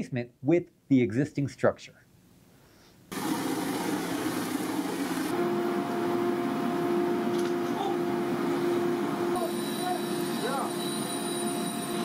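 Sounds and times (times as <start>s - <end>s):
loud machinery noise: 3.1s - 12.0s
steady hum: 3.1s - 12.0s.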